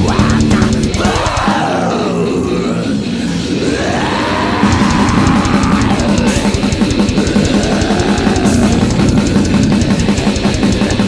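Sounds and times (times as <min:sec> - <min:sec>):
metal drums: 0:00.0 - 0:01.6, 0:04.6 - 0:11.0
distorted guitars and bass: 0:00.0 - 0:11.0.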